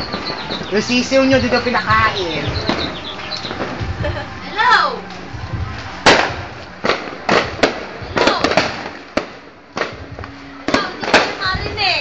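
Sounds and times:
firecrackers banging: 0.0 - 12.0.

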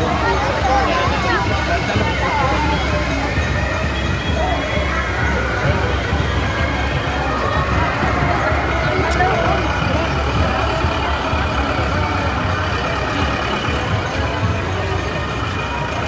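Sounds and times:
crowd voices chattering: 0.0 - 16.0
low engine rumble: 0.0 - 16.0.

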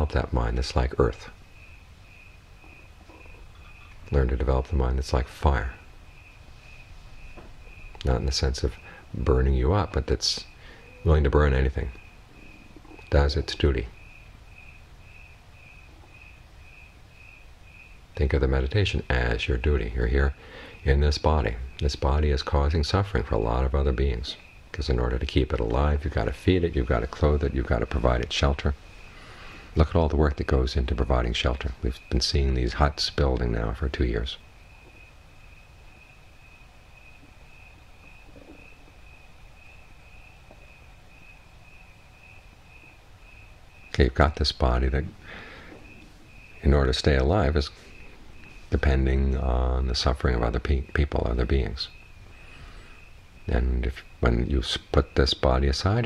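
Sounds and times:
cricket chirping: 0.0 - 56.0
faint background noise: 0.0 - 56.0
insect trilling: 0.0 - 56.0
low room rumble: 0.0 - 56.0.

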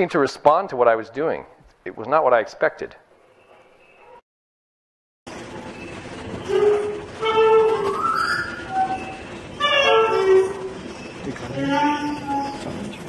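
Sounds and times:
clarinet playing: 6.4 - 10.8, 11.5 - 12.8.

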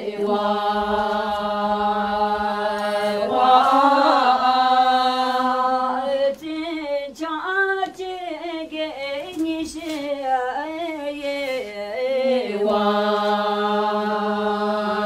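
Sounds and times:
women singing unaccompanied: 0.0 - 15.0.

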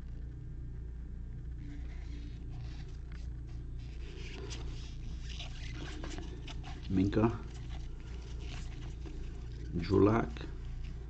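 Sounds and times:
steady low hum: 0.0 - 11.0
cards sliding and rustling: 1.6 - 11.0.

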